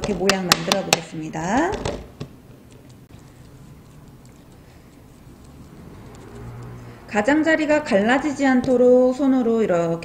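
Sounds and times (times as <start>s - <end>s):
hands shaping a meat patty: 2.5s - 6.9s.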